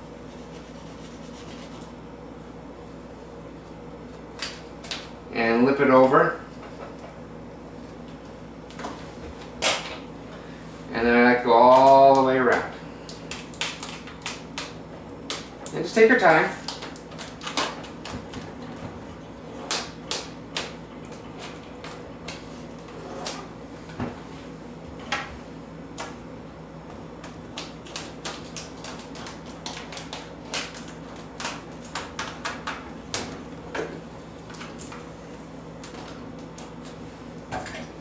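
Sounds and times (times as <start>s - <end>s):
steady low hum: 0.0s - 38.0s
vinyl film crackling and clicking: 11.7s - 15.8s, 16.6s - 18.5s, 27.0s - 33.6s.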